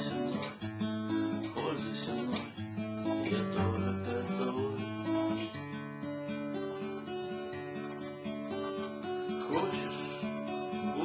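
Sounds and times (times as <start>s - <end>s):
acoustic guitar chords: 0.0s - 11.0s.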